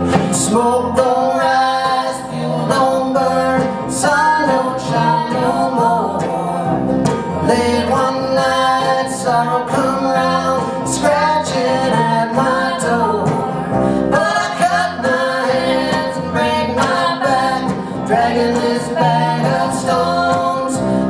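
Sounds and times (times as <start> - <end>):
acoustic guitar: 0.0 - 21.0
banjo: 0.0 - 21.0
upright bass: 0.0 - 21.0.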